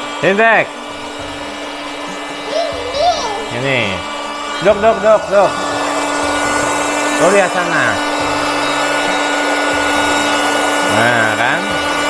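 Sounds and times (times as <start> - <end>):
electric air pump motor whine: 0.0 - 12.0
person speaking: 2.4 - 6.0.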